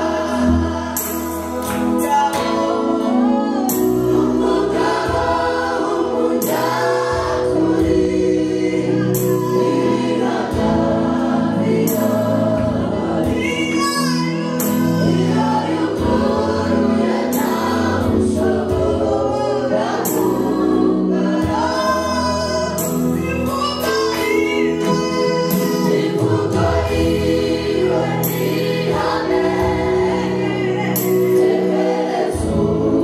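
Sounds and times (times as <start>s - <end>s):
choir singing: 0.0s - 33.0s
women singing into microphones: 0.0s - 33.0s.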